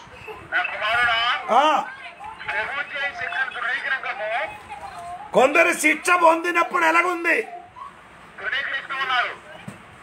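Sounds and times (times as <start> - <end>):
man preaching: 5.4 - 7.5.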